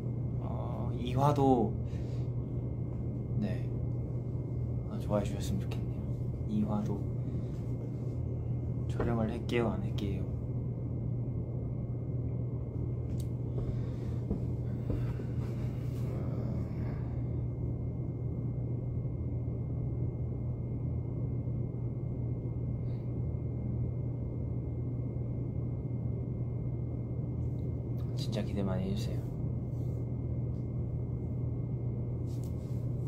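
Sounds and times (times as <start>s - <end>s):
air conditioner humming: 0.0s - 33.0s.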